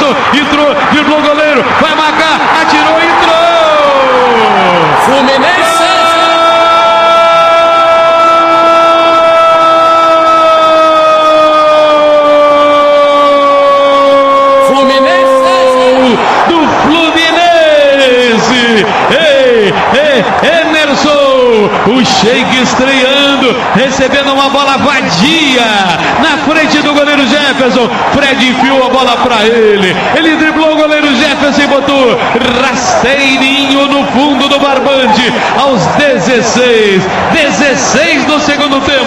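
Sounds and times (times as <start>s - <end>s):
commentator shouting goal call: 0.0s - 39.0s
stadium crowd noise: 0.0s - 39.0s.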